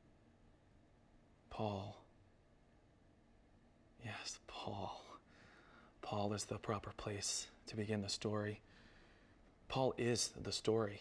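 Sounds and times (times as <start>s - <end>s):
man whispering: 1.5s - 2.2s, 4.0s - 5.3s, 6.0s - 8.7s, 9.7s - 11.0s.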